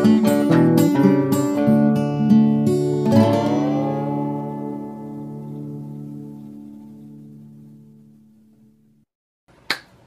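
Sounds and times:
finger snap: 9.7s - 10.0s.

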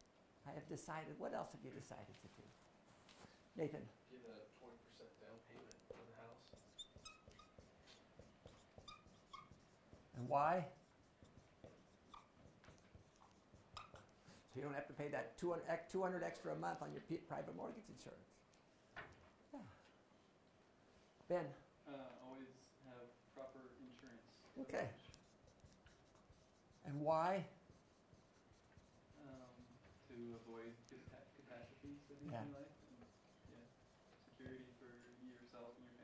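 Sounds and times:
marker squeaking on whiteboard: 4.9s - 19.4s, 23.4s - 36.0s.

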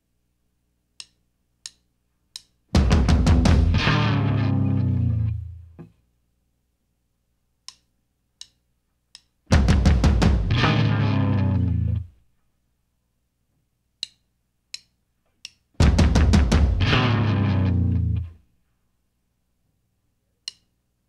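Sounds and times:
rock band chord ringing: 2.8s - 5.4s, 9.6s - 11.9s, 15.8s - 18.2s.

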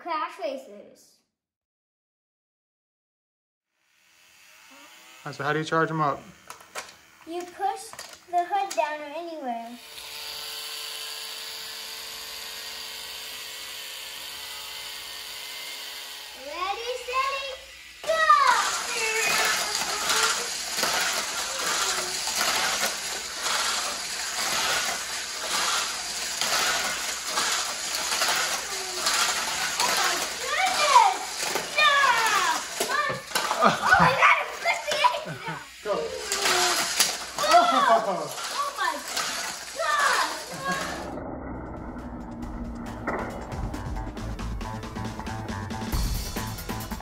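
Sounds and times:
toy car motor whining: 3.8s - 41.2s
toy cars rattling on track: 5.4s - 41.2s
child calling out: 16.8s - 20.5s, 29.8s - 39.0s, 39.7s - 41.0s.

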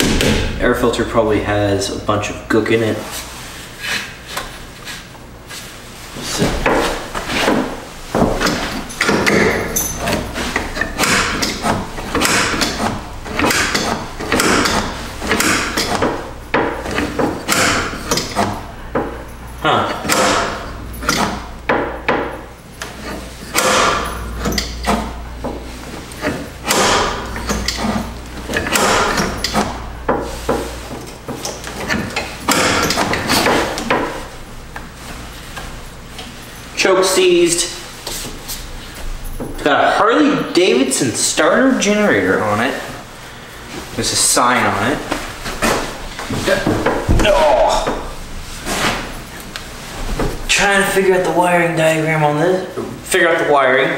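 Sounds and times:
knocks and clanks on metal engine parts: 0.0s - 0.8s, 6.4s - 34.3s.

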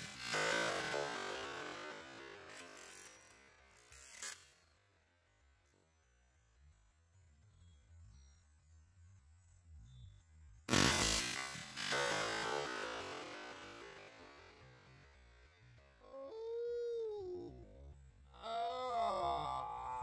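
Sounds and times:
rifle gunshot: 10.7s - 12.8s
moaning tones bending in pitch: 15.8s - 20.0s.

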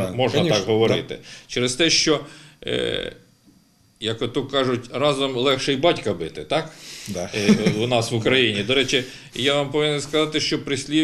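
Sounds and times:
person speaking: 0.0s - 1.3s, 7.0s - 11.0s.

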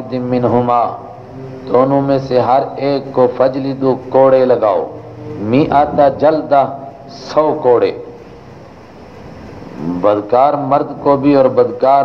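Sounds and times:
even hiss: 0.0s - 12.0s
man's voice: 1.7s - 8.1s
low rumble: 4.8s - 9.7s.

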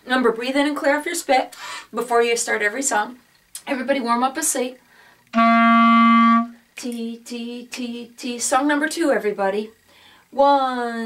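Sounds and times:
clarinet holding a note: 5.3s - 6.6s.

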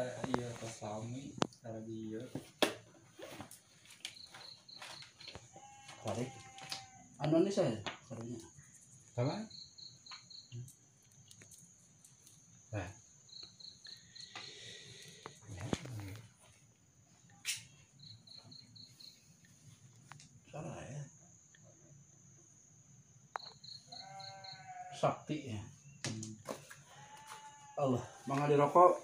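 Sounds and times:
crickets chirring: 0.0s - 29.0s.

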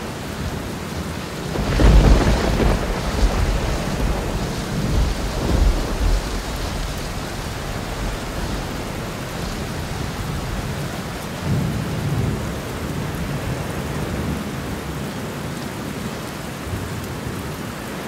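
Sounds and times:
low rolling thunder: 0.0s - 14.5s
steady rain: 0.0s - 18.0s.

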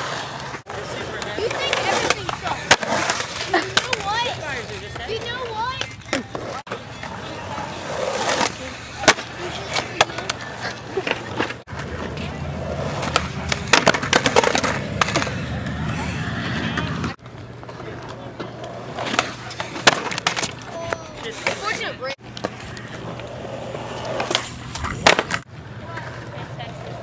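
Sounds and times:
skateboard wheels rolling on concrete: 0.0s - 27.0s
skateboard clacking on concrete: 0.4s - 27.0s.

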